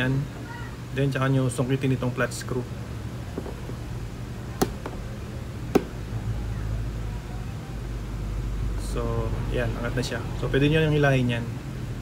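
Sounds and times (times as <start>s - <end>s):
steady low hum: 2.0s - 8.6s.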